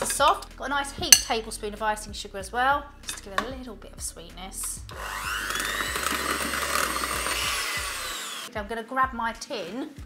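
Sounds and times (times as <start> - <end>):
electric hand whisk whirring: 4.9 - 8.5.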